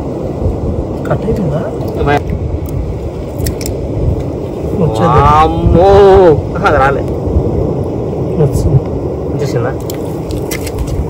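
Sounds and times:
sea surf rushing: 0.0 - 11.0.

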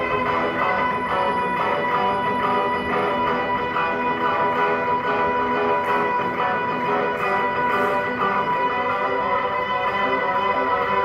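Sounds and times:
looped electric guitar notes: 0.0 - 11.0.

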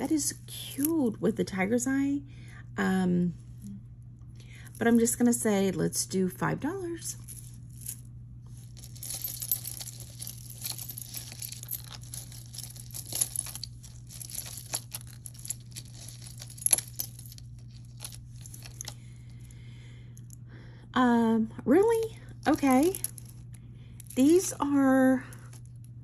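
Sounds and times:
low hum: 0.0 - 26.0
chains and beads clinking: 7.0 - 19.5, 21.8 - 25.9.

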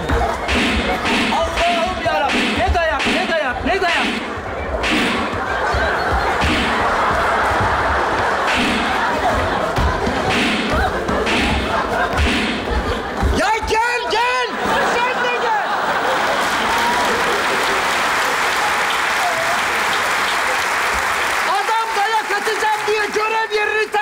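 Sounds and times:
audience laughing: 0.0 - 21.0
thuds and slaps on stage floor: 6.2 - 7.7.

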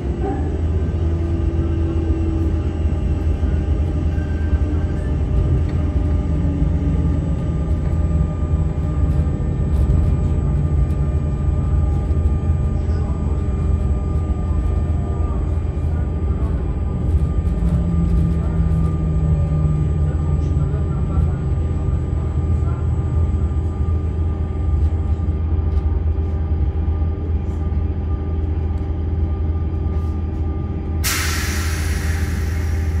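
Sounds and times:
train rumble and hum: 0.0 - 33.0.

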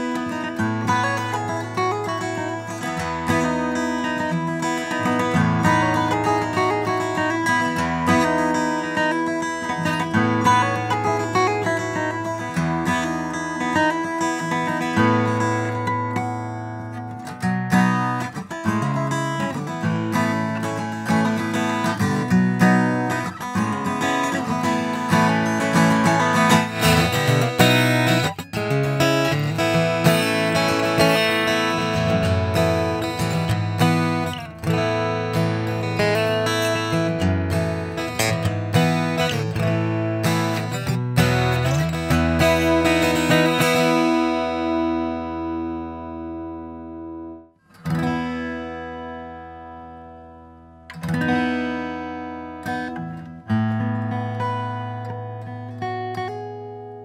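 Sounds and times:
fingerstyle acoustic guitar: 0.0 - 57.0.

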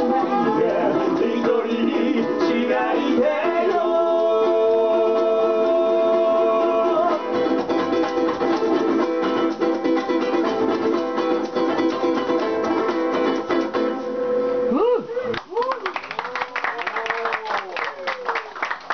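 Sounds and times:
ukuleles strumming: 0.0 - 15.6.

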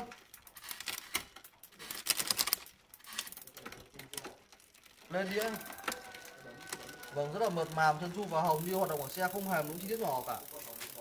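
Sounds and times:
bicycle chain clatter: 0.0 - 11.0
bicycle drivetrain clicking: 0.0 - 11.0.

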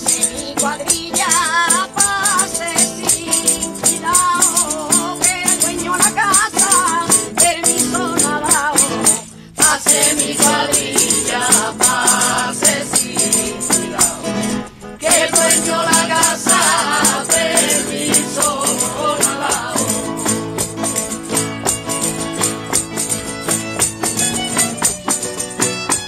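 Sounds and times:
woman singing: 0.0 - 14.4, 15.0 - 20.1
flamenco guitar: 0.0 - 26.0
jingling frame drum: 0.0 - 26.0.

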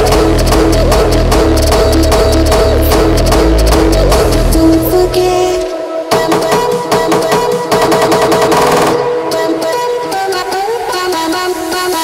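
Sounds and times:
electronic dance music kick beat: 0.0 - 12.0.

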